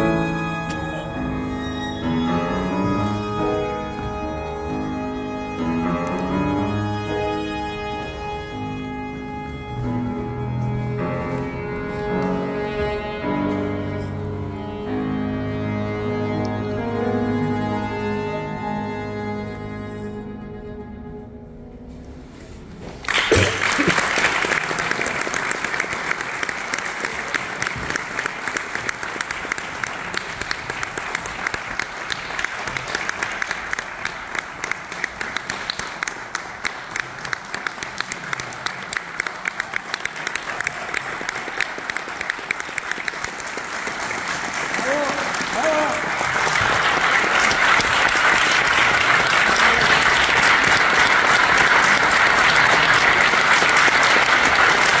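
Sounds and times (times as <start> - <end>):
audience applauding: 23.0 - 55.0.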